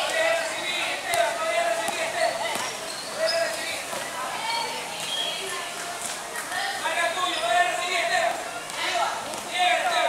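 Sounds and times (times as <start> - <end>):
basketball bouncing on court: 1.1 - 2.7.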